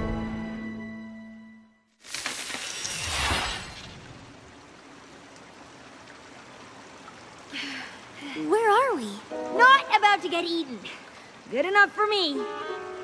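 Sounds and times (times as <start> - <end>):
soft watery hiss: 2.0 - 13.0.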